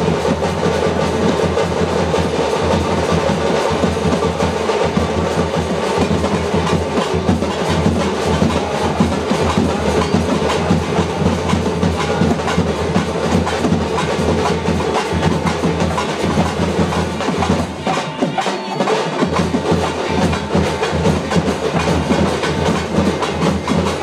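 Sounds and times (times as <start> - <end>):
fast drumming: 0.0 - 24.0.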